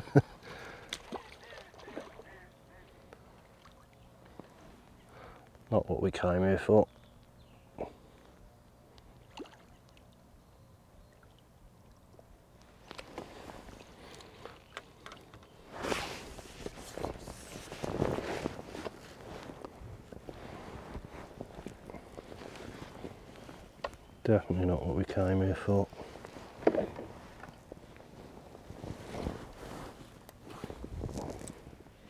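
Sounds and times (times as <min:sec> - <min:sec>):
water sloshing: 0:00.8 - 0:04.9.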